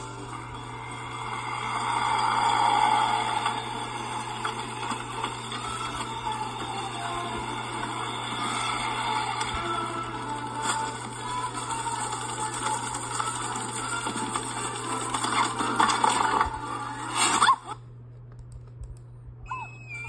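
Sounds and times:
background music: 0.0s - 17.5s
steady low hum: 0.0s - 20.0s.

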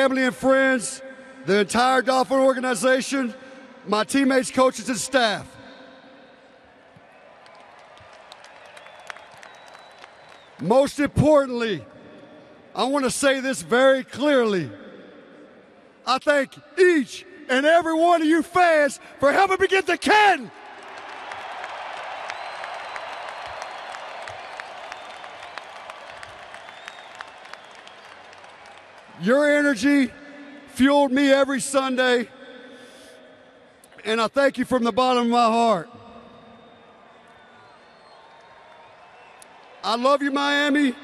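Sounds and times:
stadium crowd applauding: 6.7s - 11.8s, 20.1s - 30.1s, 36.3s - 41.0s
sharp claps: 7.0s - 10.6s, 20.8s - 29.1s.

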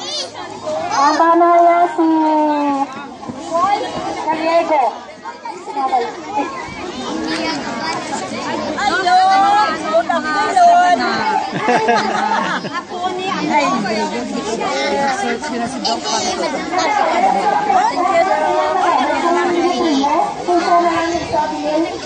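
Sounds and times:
crowd chattering: 0.0s - 22.0s.

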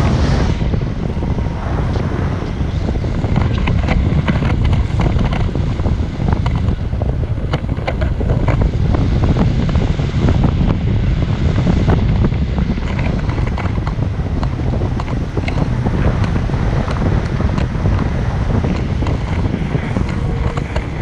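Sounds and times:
wind buffeting microphone: 0.0s - 21.0s
short crackles: 12.7s - 21.0s.

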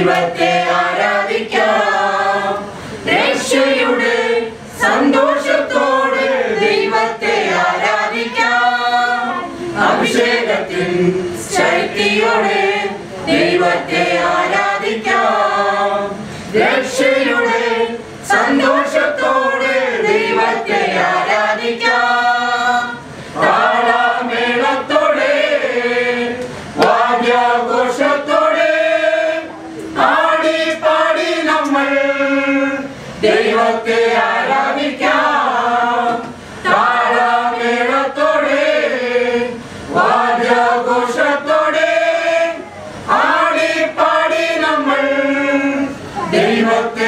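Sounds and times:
group singing a hymn unaccompanied: 0.0s - 47.0s.

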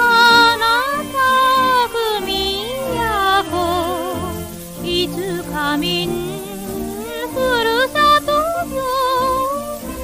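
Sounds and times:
tango instrumental accompaniment: 0.0s - 10.0s
woman singing with vibrato: 0.0s - 10.0s.

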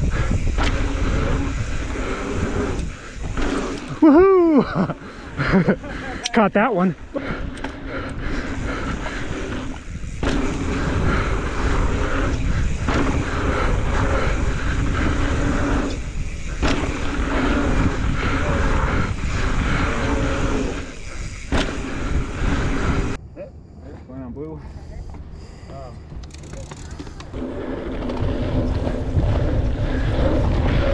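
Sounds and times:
bike freewheel buzzing: 0.0s - 23.2s, 24.7s - 30.9s
bike tyres rumbling on dirt: 0.0s - 23.2s, 26.2s - 30.9s
wind buffeting microphone: 0.0s - 23.2s, 27.3s - 30.9s
bike knocking over bumps: 9.8s - 18.0s.

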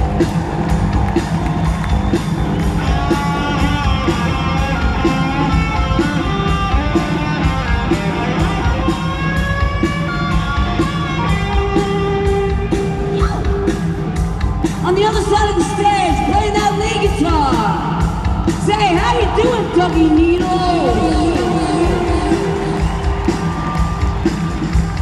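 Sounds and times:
drums and bass beat: 0.0s - 25.0s.

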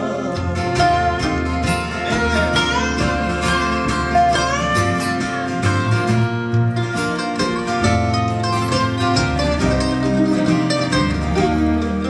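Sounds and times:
bluegrass band playing: 0.0s - 12.0s
resonator guitar sliding notes: 0.0s - 12.0s.

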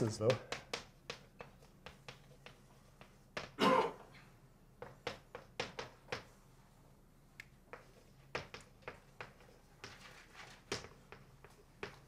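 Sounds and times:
chalk tapping on blackboard: 0.0s - 3.6s, 4.8s - 6.4s, 7.4s - 12.0s.

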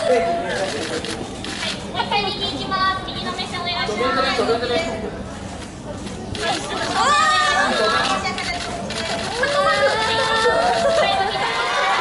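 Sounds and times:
people chattering and calling out: 0.0s - 12.0s.

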